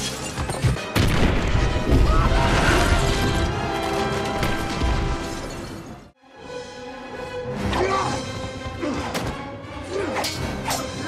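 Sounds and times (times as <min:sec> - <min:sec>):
film music score: 0:00.0 - 0:11.0.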